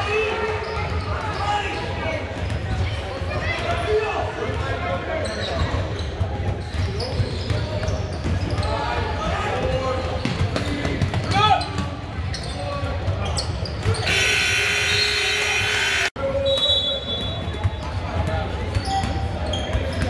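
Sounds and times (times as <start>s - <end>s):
voices of players and spectators: 0.0s - 20.0s
harsh steady buzzer: 14.1s - 16.1s.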